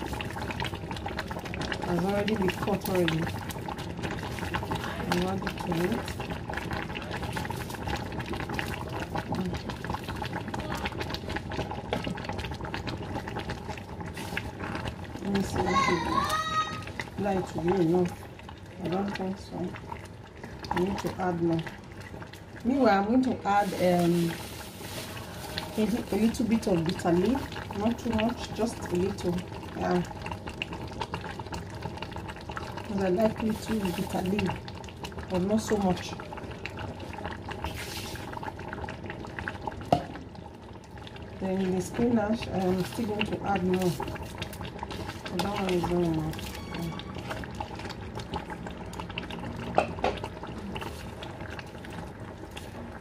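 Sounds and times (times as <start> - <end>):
soup bubbling in a pot: 0.0 - 53.0.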